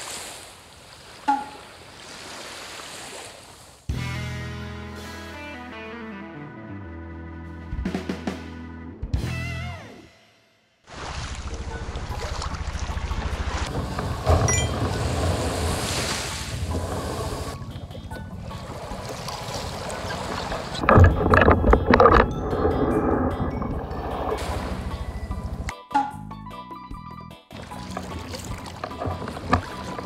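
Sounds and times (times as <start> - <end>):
lapping sea water: 10.9 - 25.7, 27.5 - 30.0
bumps and knocks against kayak: 20.2 - 22.4, 27.8 - 30.0.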